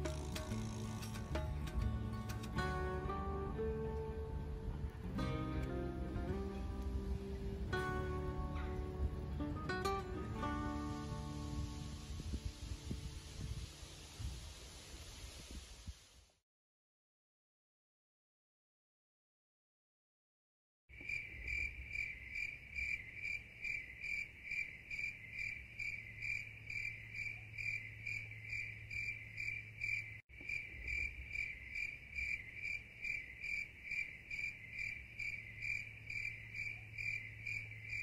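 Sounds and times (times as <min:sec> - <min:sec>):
crickets chirping: 0:20.9 - 0:38.0.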